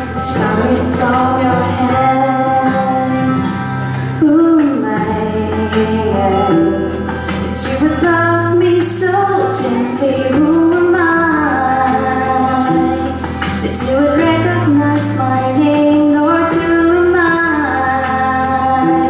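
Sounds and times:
instrumental accompaniment with bass: 0.0 - 19.0
woman singing into a microphone: 0.0 - 19.0.

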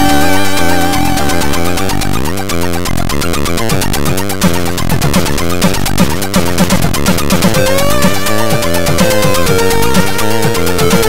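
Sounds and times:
square-wave bass: 0.0 - 11.0
falling pitch sweeps: 7.5 - 11.0.

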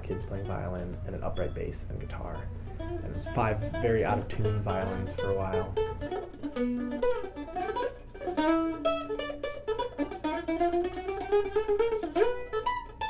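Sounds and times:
acoustic plucked-string music: 0.0 - 13.0.

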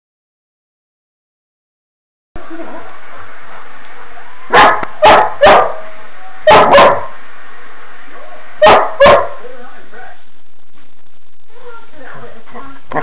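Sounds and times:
puppy barking: 4.5 - 7.2, 8.2 - 9.4.

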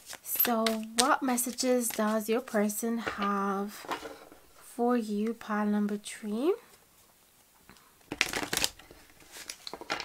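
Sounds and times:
cards being shuffled: 0.0 - 4.5, 8.1 - 10.0.

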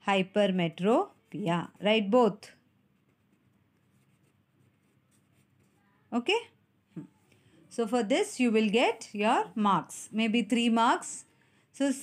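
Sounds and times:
pen scratching on paper: 0.5 - 5.8.

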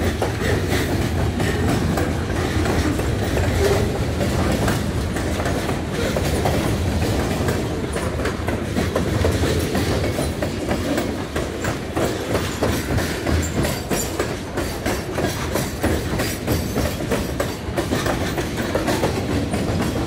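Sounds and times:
freight train rumbling past: 0.0 - 20.0
wheels clicking over rail joints: 0.0 - 20.0.

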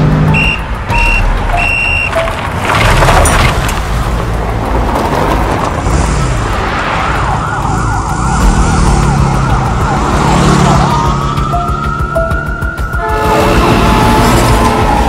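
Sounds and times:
engine revving: 5.8 - 12.6
police siren: 7.0 - 15.0.

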